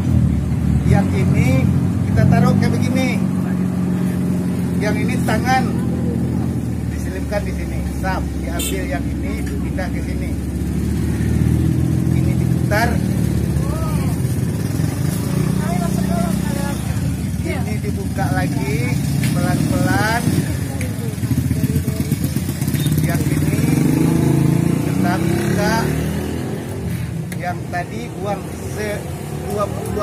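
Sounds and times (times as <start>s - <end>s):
vehicle engine running: 0.0s - 26.1s
people's voices: 0.9s - 30.0s.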